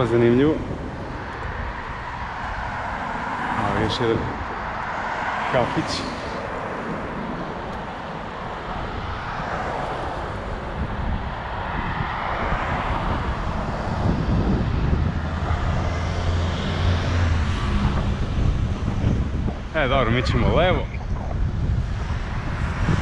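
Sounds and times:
street traffic: 0:00.0 - 0:23.0
vehicle engine hum: 0:00.0 - 0:23.0
wind on microphone: 0:00.0 - 0:23.0.

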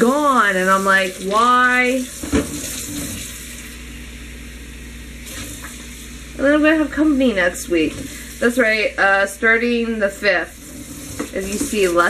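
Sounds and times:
water running from tap: 0:00.0 - 0:03.9, 0:05.1 - 0:12.0.

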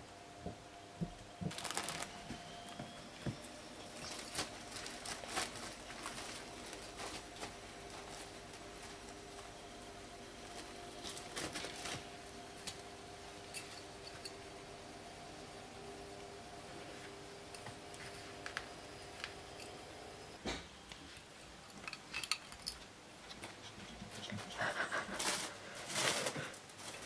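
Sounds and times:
faint steady hum: 0:00.0 - 0:27.0
foil balloon crinkling: 0:01.4 - 0:02.4, 0:03.9 - 0:09.4, 0:10.4 - 0:12.4, 0:25.1 - 0:27.0.

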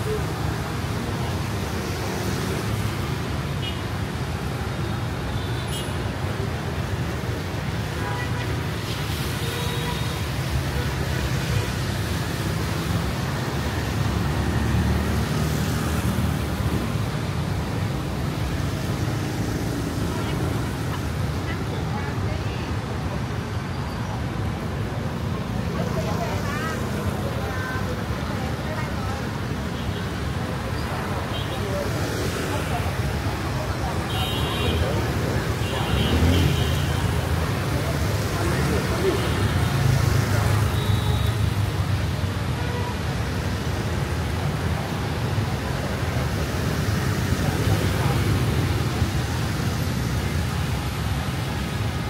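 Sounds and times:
people talking nearby: 0:00.0 - 0:52.0
traffic on wet road: 0:00.0 - 0:52.0.

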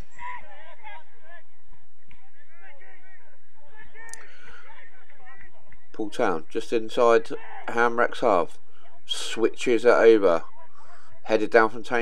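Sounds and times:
players calling and shouting: 0:00.0 - 0:12.0.

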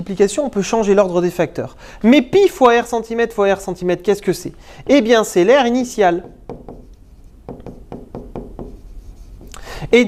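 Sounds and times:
stylus tapping on glass: 0:06.2 - 0:06.9, 0:07.5 - 0:08.8.

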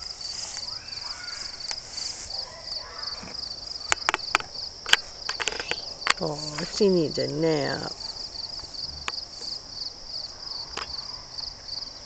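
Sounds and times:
insects chirping: 0:00.0 - 0:12.0
sharp clicks and snaps: 0:03.8 - 0:06.8.

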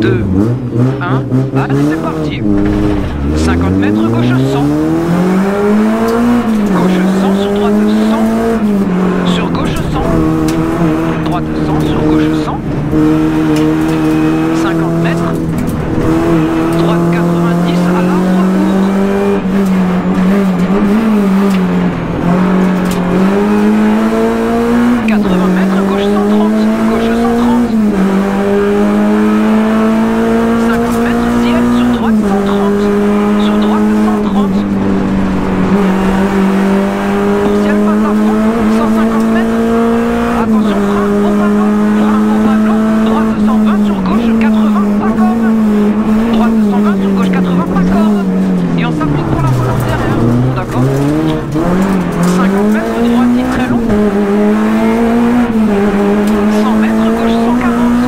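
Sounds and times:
car engine at high revs: 0:00.0 - 0:58.0.

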